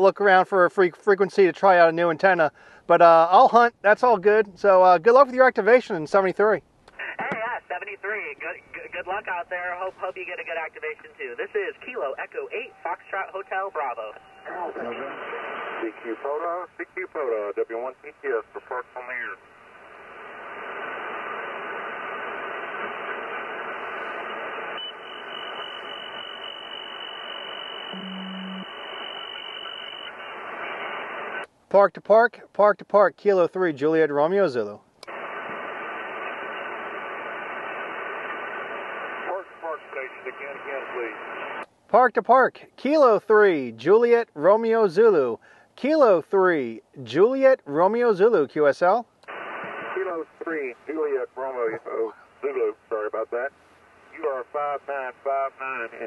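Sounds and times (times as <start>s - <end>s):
faint steady tones: 6.9s - 31.4s
radio static hiss: 6.9s - 31.5s, 35.1s - 41.7s, 49.3s - 56.0s
person talking over radio: 7.0s - 19.4s, 27.9s - 28.6s, 39.3s - 41.2s, 49.6s - 53.5s, 54.2s - 56.0s.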